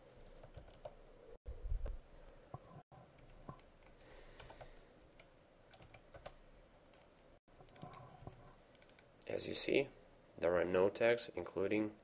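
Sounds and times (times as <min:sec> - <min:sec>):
computer keyboard clicks: 0:00.4 - 0:01.0, 0:04.4 - 0:04.7, 0:05.7 - 0:06.4, 0:07.7 - 0:09.1.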